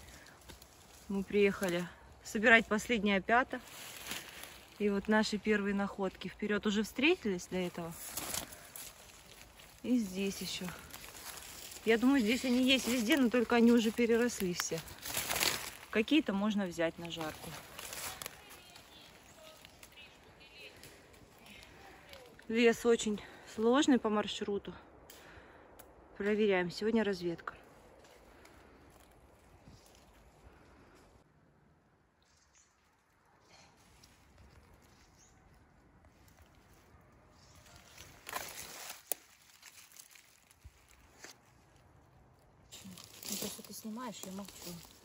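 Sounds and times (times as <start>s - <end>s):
rustling through dry leaves: 0.0s - 23.5s, 27.6s - 31.2s, 32.7s - 45.0s.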